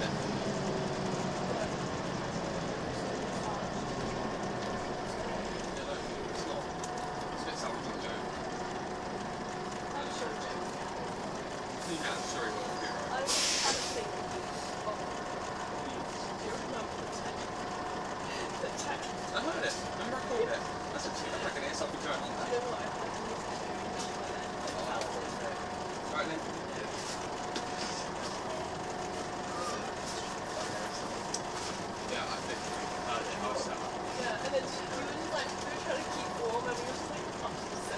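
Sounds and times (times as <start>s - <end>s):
bus diesel engine running: 0.0s - 37.9s
air brakes hissing: 13.2s - 14.8s.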